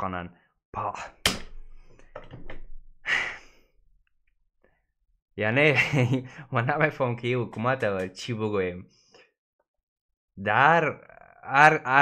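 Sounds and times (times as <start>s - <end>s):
man sighing: 3.0s - 3.7s.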